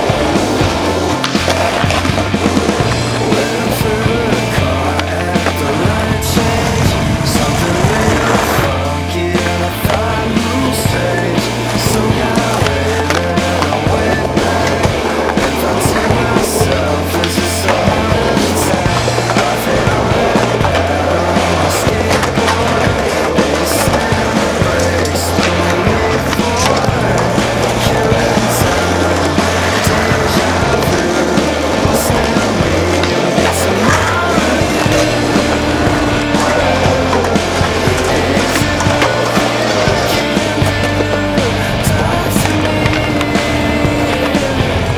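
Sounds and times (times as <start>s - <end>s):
loud music with bass line: 0.0s - 44.9s
skateboard clacks: 0.0s - 44.9s
skateboards rolling on concrete: 0.0s - 44.9s.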